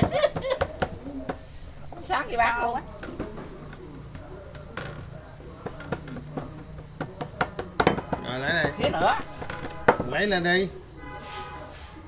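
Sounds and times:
crickets chirping: 0:00.0 - 0:12.0
low murmured voices: 0:00.0 - 0:12.0.

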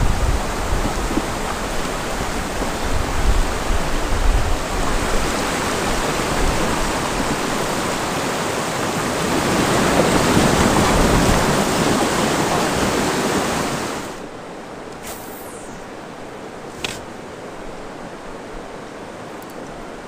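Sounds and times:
whitewater rushing over rocks: 0:00.0 - 0:14.3.

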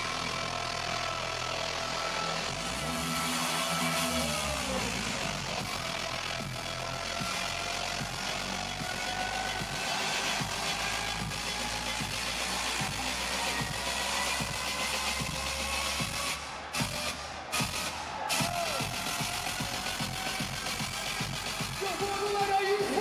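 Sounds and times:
dubstep music with rising synth: 0:00.0 - 0:23.0.

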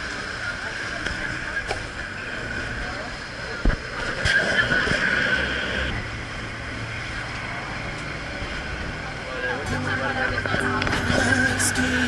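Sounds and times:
boat engine running: 0:00.0 - 0:12.0
passengers' voices: 0:07.4 - 0:12.0.

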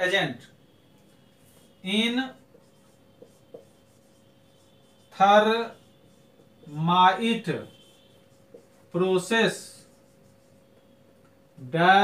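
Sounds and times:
marker tip tapping on whiteboard: 0:03.2 - 0:03.8.

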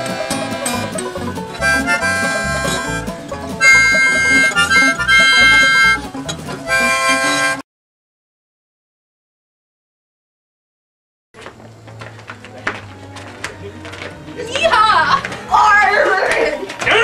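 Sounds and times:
harmonica chords: 0:00.0 - 0:07.6
strummed acoustic guitar: 0:00.0 - 0:07.6.

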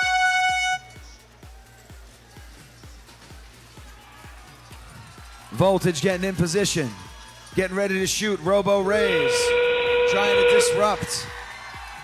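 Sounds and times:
loud horn-like chord: 0:00.0 - 0:01.0, 0:08.9 - 0:11.4
background music with steady beat: 0:00.0 - 0:12.0.

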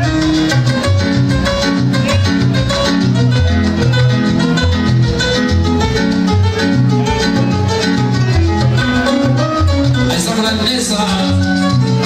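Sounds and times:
salsa music over sound system: 0:00.0 - 0:12.0.

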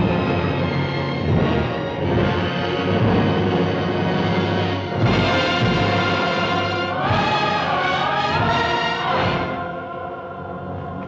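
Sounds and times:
choir singing sustained lines: 0:00.0 - 0:11.0
orchestral film music: 0:00.0 - 0:11.0.

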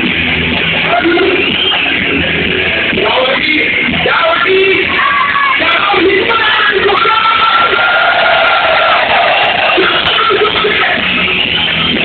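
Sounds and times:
rock band playing distorted music: 0:00.0 - 0:12.0.

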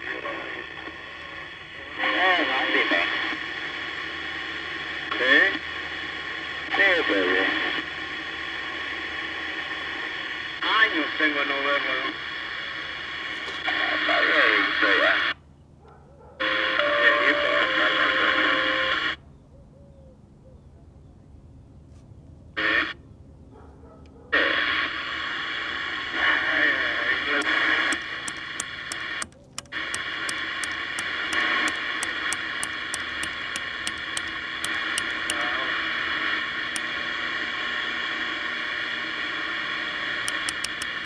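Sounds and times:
radio static hiss: 0:00.0 - 0:15.4, 0:16.4 - 0:19.2, 0:22.6 - 0:23.0, 0:24.3 - 0:41.0
voices over cb radio speaker: 0:00.0 - 0:15.4, 0:16.4 - 0:19.2, 0:22.6 - 0:23.0, 0:24.3 - 0:38.3.

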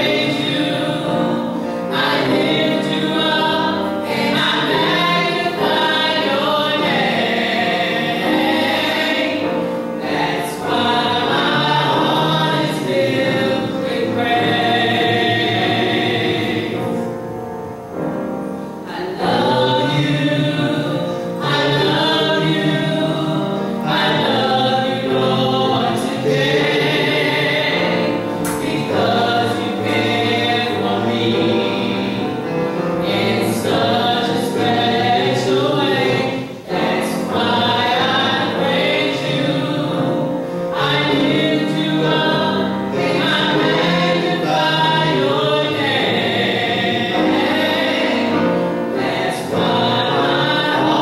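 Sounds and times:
vocal group singing gospel: 0:00.0 - 0:17.4, 0:18.2 - 0:51.0.

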